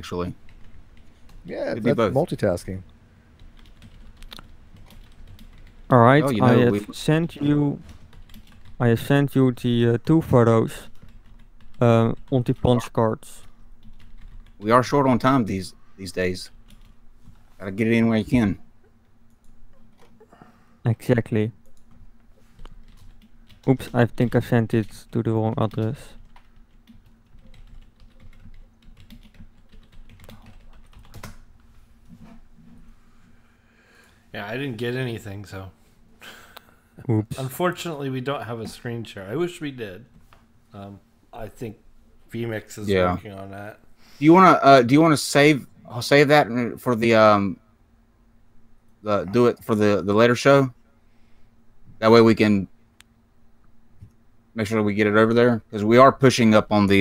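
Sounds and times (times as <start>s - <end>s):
keyboard typing clicks: 25.7s - 31.4s.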